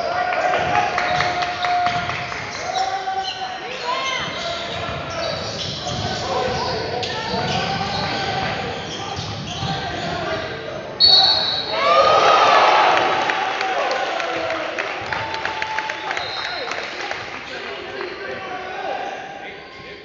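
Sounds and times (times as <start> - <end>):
crowd shouting and cheering: 0.0 - 5.1, 11.0 - 19.9
sneakers squeaking: 1.0 - 11.8.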